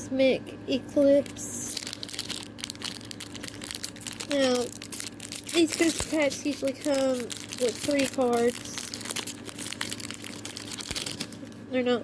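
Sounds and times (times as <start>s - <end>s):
foil wrapper crinkling: 1.2s - 11.6s.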